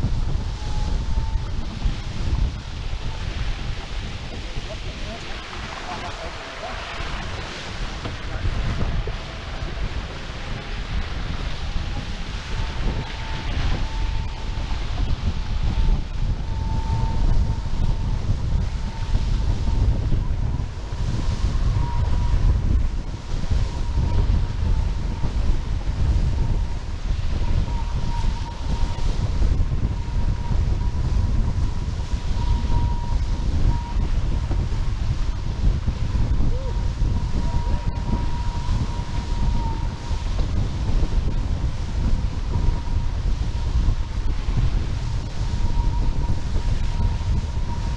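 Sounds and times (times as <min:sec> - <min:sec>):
water rushing past hulls: 0:00.0 - 0:33.0
thin steady whine: 0:00.0 - 0:47.9
wind buffeting microphone: 0:00.0 - 0:47.9.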